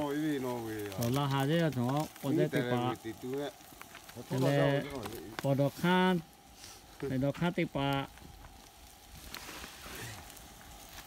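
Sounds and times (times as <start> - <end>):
campfire hissing and crackling: 0.0 - 11.0.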